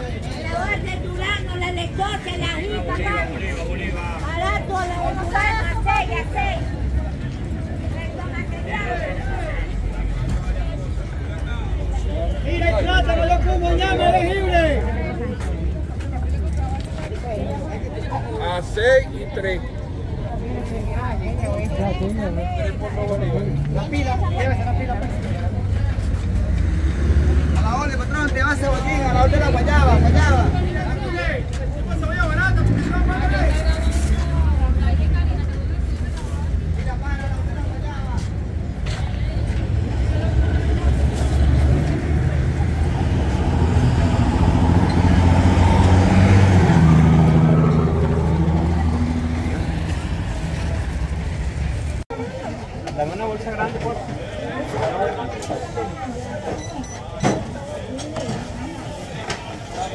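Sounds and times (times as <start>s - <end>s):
passing traffic rumble: 0.0s - 59.9s
voices talking: 0.0s - 59.9s.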